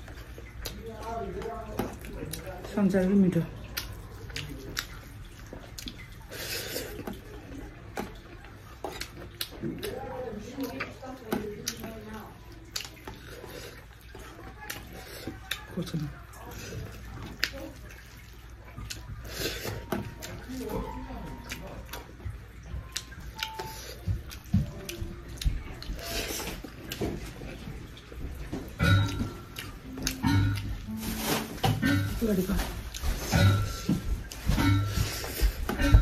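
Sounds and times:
chewing: 0:00.0 - 0:36.0.

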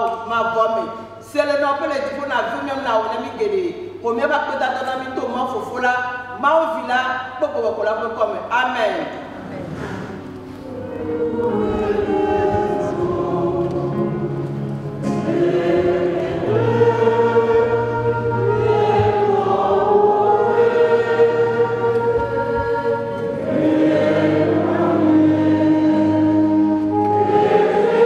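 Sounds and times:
congregation singing a hymn: 0:09.0 - 0:28.0.

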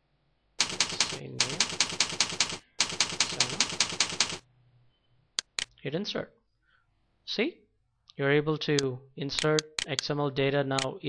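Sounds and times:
computer keyboard typing: 0:00.6 - 0:04.4.

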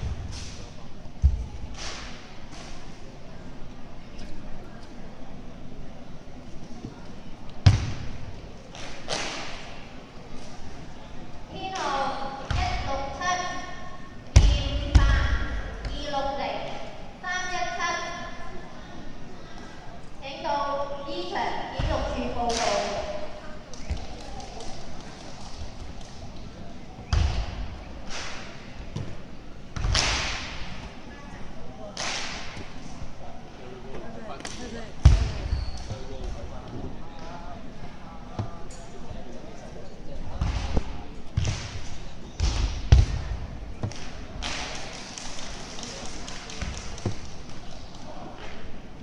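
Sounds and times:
faint voices murmuring: 0:00.0 - 0:49.0.

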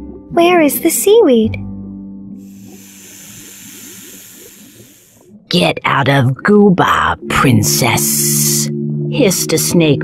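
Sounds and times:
cartoon snake hiss: 0:02.5 - 0:05.1
underwater bubbling blips: 0:02.5 - 0:09.0.

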